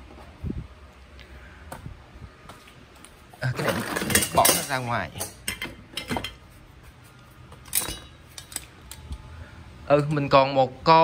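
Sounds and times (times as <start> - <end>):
metal parts clinking: 3.6 - 6.4, 7.6 - 9.1.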